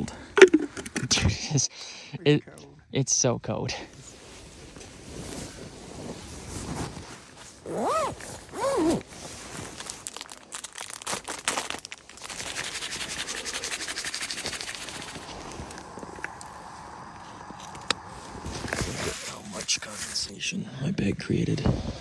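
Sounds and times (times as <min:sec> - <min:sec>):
camping gear rustling and crinkling: 0:03.8 - 0:20.4.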